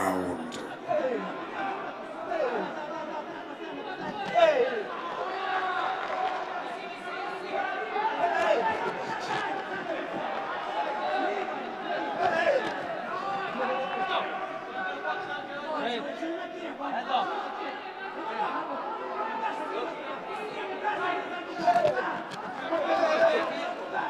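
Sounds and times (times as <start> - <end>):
crowd shouting and chatter: 0.0 - 24.0.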